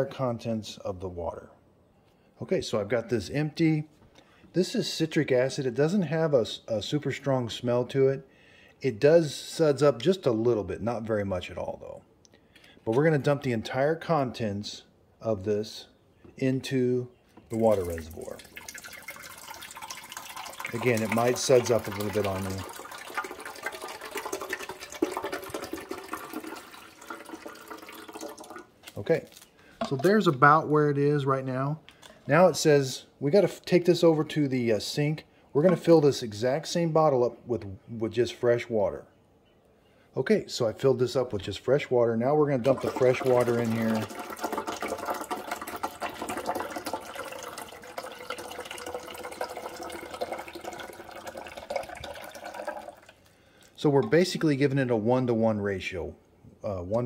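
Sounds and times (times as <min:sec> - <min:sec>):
liquid pouring and splashing: 0:17.5 - 0:30.2, 0:42.5 - 0:54.4.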